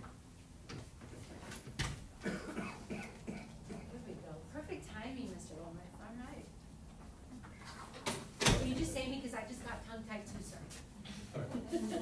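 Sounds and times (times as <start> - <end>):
person coughing: 2.2 - 4.0.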